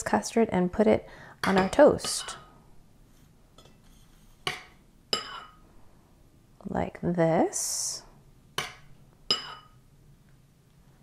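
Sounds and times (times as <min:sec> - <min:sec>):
metal spoon clinking on crockery: 0:08.6 - 0:09.8.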